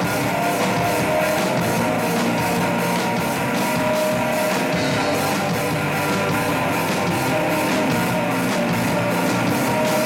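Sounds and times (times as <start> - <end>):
distorted electric guitars: 0.0 - 10.0
drum kit beat: 0.0 - 10.0.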